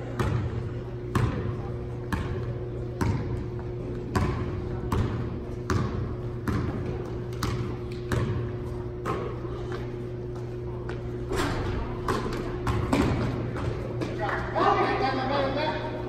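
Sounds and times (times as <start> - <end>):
basketball bouncing on gym floor: 0.0 - 14.2.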